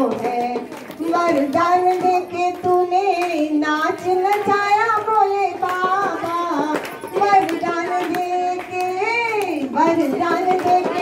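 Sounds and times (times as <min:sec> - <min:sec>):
person singing devotional song: 0:00.0 - 0:11.0.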